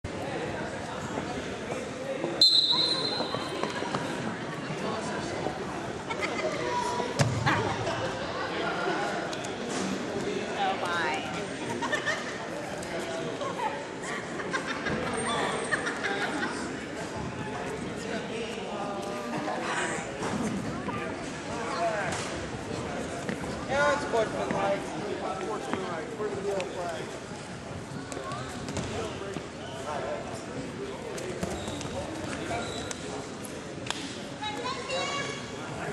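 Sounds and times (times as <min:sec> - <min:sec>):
voices echoing in a gymnasium: 0:00.0 - 0:35.9
referee's whistle blast: 0:02.4 - 0:03.4.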